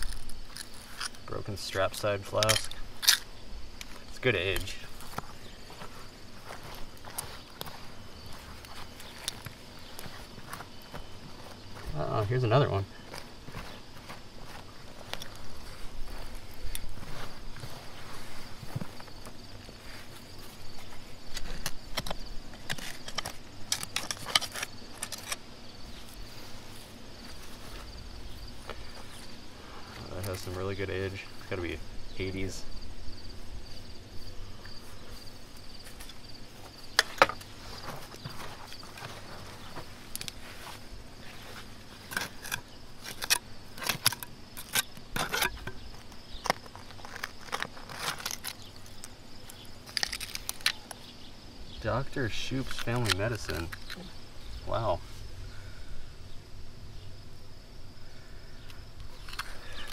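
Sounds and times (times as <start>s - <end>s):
insect trill: 0.0s - 59.9s
trowel scraping stony soil: 19.8s - 25.4s, 41.2s - 50.6s.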